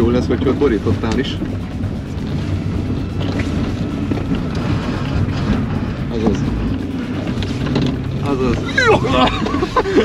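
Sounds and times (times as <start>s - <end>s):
car engine low drone: 0.0s - 10.0s.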